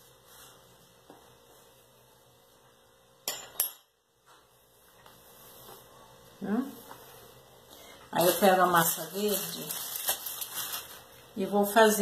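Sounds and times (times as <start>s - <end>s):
sharp clinks on stone worktop: 3.2s - 3.9s.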